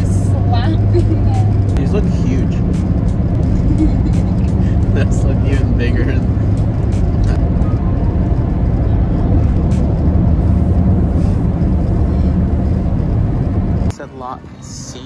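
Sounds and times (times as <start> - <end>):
car cabin road and engine rumble: 0.0 - 15.0.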